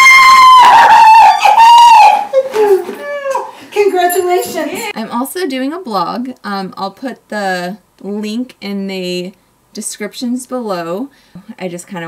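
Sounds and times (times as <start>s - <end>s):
woman squealing with excitement: 0.0s - 3.6s.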